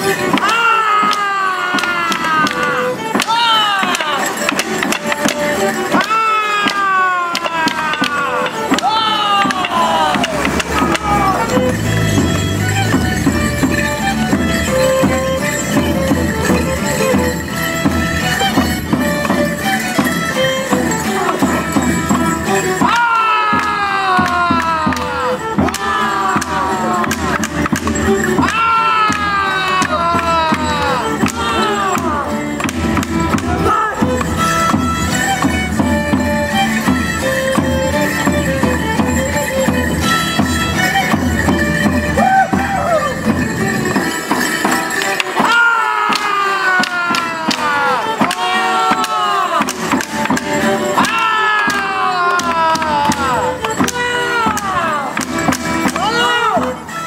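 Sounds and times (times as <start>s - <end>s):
wooden sticks clacking: 0.0s - 35.6s, 44.0s - 57.0s
folk dance tune: 0.0s - 57.0s
group shouts falling in pitch: 0.4s - 4.3s, 6.0s - 11.5s, 22.8s - 27.5s, 28.4s - 32.3s, 45.4s - 50.0s, 51.0s - 53.6s.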